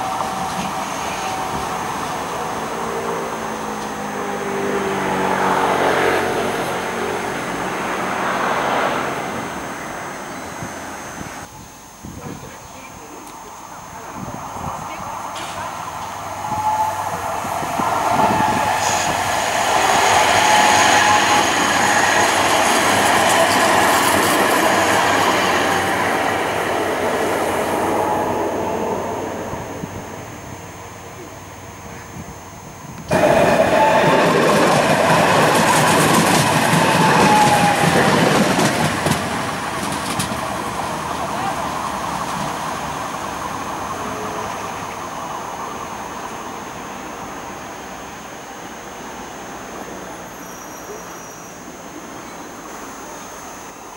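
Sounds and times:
tram running past on rails: 0.0 - 11.7, 13.4 - 53.9.

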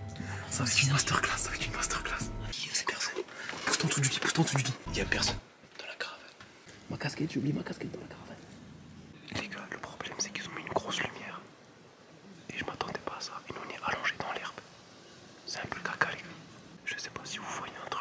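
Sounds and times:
person whispering: 0.2 - 6.4, 9.2 - 11.5, 12.4 - 14.6, 15.5 - 18.0.

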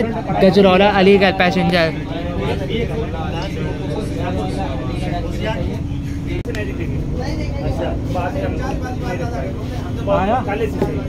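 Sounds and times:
constant hum: 0.0 - 11.0
voices chattering: 0.0 - 11.0.

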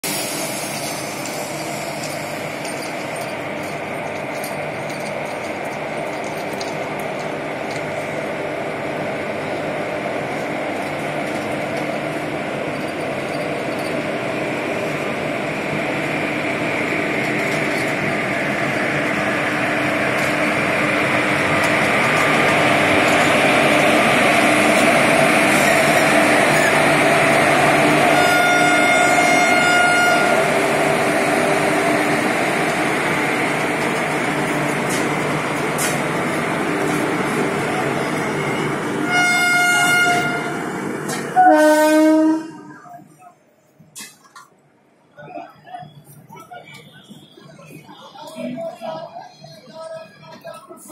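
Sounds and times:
train wheels clattering on rail: 0.2 - 8.4, 10.3 - 41.5
locomotive air horn: 28.1 - 30.6, 39.0 - 40.6, 41.4 - 42.8.

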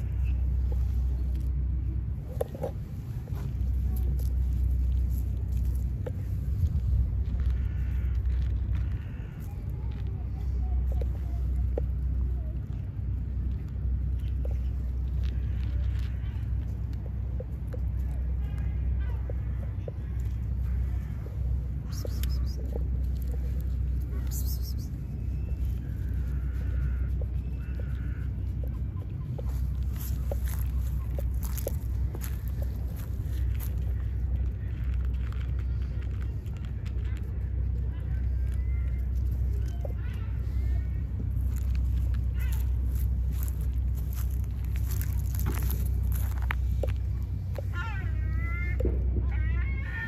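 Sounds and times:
cat crunching dry kibble: 0.0 - 47.8
low outdoor rumble: 0.0 - 50.0.

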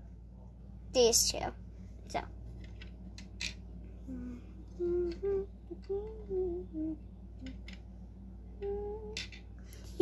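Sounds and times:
low electrical hum: 0.0 - 10.0
child humming: 4.1 - 7.6, 8.6 - 9.2.

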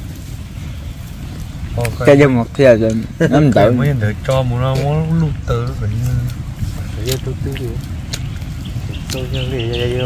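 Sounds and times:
wind buffeting microphone: 0.0 - 10.0
man's voice: 9.0 - 10.0.

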